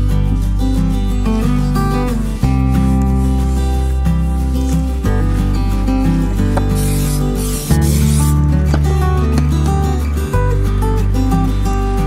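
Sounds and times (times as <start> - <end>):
acoustic guitar music: 0.0 - 12.0
aerosol spray can hissing: 6.4 - 8.4.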